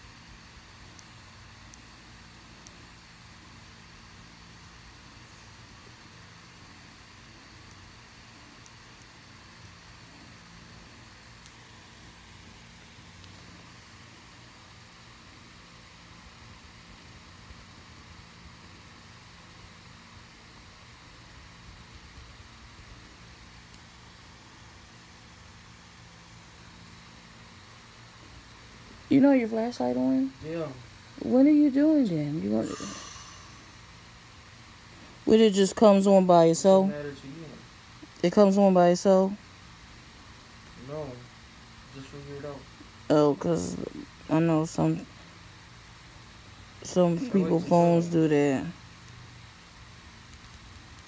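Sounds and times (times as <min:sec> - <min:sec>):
low mechanical hum: 0:00.0 - 0:51.0
even hiss: 0:29.0 - 0:38.9.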